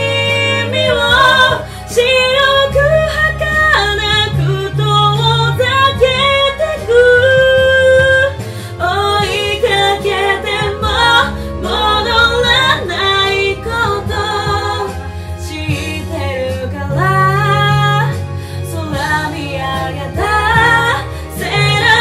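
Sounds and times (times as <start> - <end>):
instrumental backing: 0.0 - 22.0
women singing pop ballad: 0.0 - 22.0.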